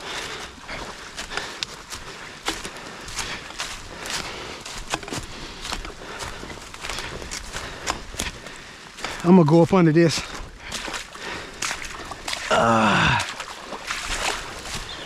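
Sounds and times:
footsteps through dead leaves: 0.0s - 15.0s.

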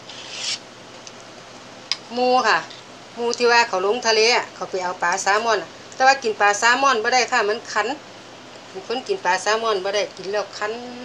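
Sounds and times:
rubbing hiss: 0.0s - 0.6s
low steady background noise: 0.0s - 11.0s.

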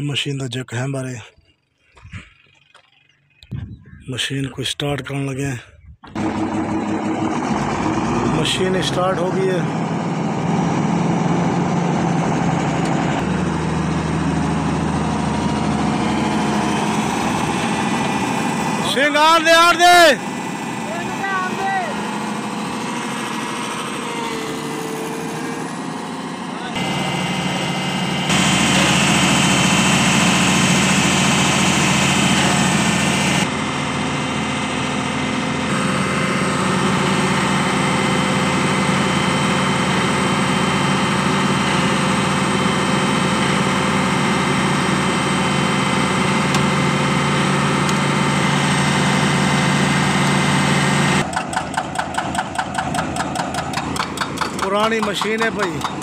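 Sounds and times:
excavator diesel engine running: 6.0s - 56.0s
rapid evenly spaced knocking: 51.2s - 56.0s.

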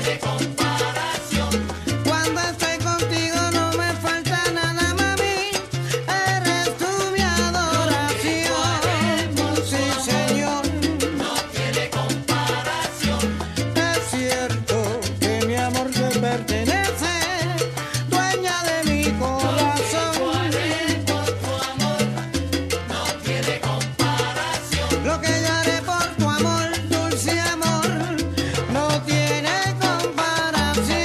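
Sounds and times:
salsa music: 0.0s - 31.0s.

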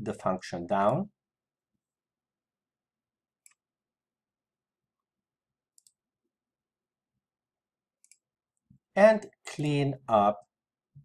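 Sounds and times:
computer mouse clicks: 3.4s - 3.6s, 5.7s - 6.0s, 8.0s - 8.3s.

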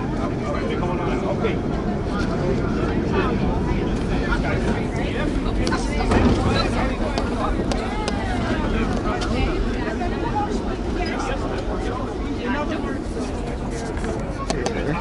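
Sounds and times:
people's voices: 0.0s - 15.0s
subway train wheels rumbling on rail: 0.0s - 15.0s.

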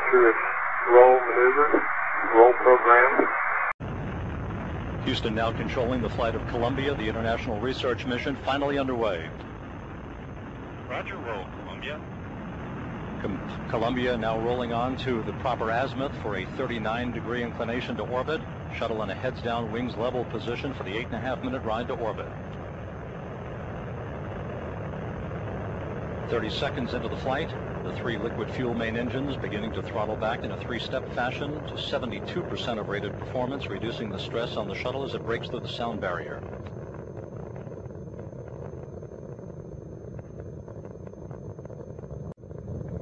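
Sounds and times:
rocket engines rumbling: 0.0s - 43.0s.

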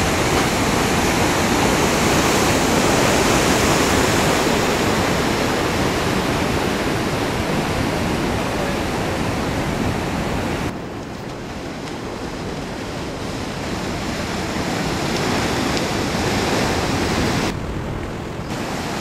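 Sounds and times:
ocean surf: 0.0s - 19.0s.

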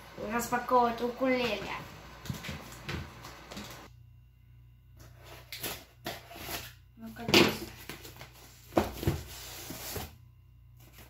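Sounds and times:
cardboard scraping and rustling: 7.6s - 10.2s.

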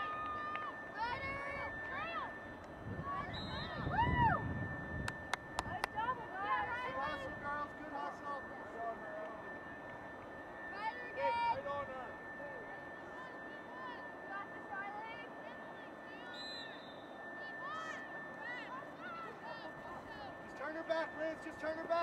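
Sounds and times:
distant shouts and yells: 0.0s - 4.8s, 5.4s - 8.8s, 10.6s - 21.9s
faint high-pitched tone: 0.0s - 22.0s.

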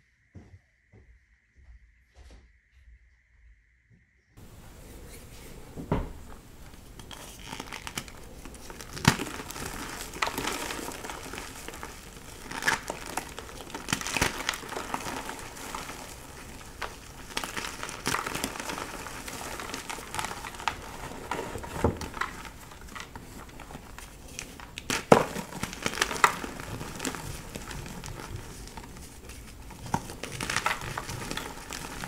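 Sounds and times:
chalk pieces cracking apart: 6.3s - 32.0s.

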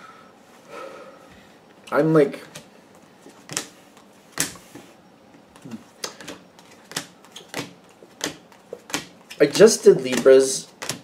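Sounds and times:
cards snapping and clicking: 3.5s - 3.7s, 5.6s - 11.0s.

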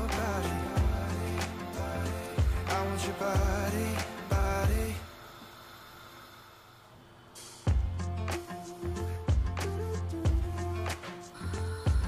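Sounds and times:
pop song: 0.0s - 5.8s, 7.7s - 12.0s
faint hiss: 0.0s - 10.2s.

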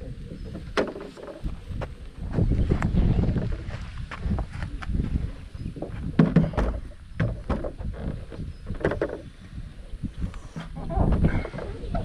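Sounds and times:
wind rumble on microphone: 0.0s - 12.0s
board knocking and scraping on car roof: 5.9s - 9.3s.

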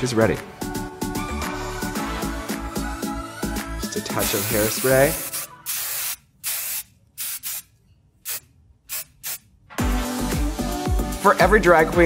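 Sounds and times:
aerosol can spraying: 4.1s - 9.5s.

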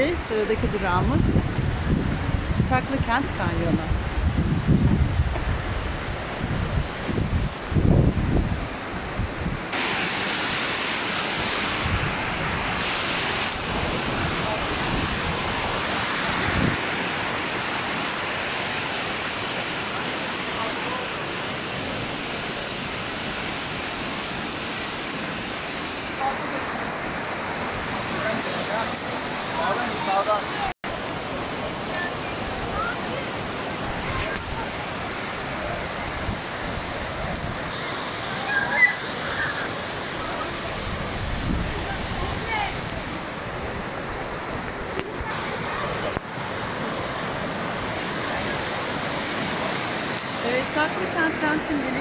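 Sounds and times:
wind buffeting microphone: 0.0s - 9.8s, 11.6s - 17.1s, 40.0s - 46.4s
stream rushing over rocks: 0.0s - 52.0s.

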